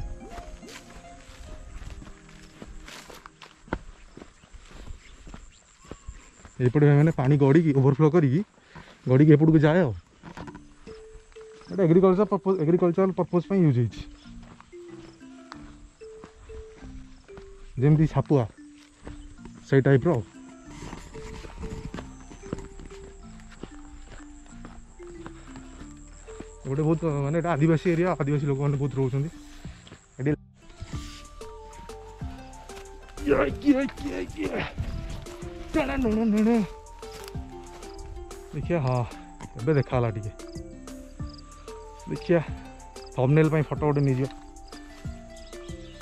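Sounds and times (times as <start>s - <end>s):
faint background music: 0.0s - 46.0s
footsteps crunching on dry earth: 0.0s - 46.0s
melody of short held notes: 10.6s - 29.6s, 30.6s - 46.0s.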